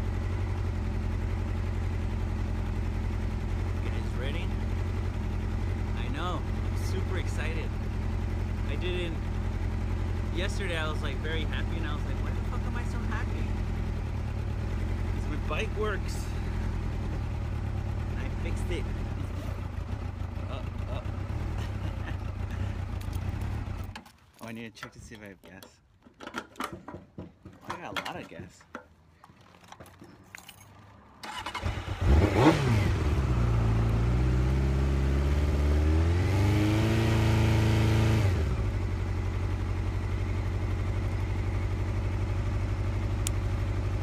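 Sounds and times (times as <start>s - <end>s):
motorcycle engine idling: 0.0s - 24.2s, 38.4s - 44.0s.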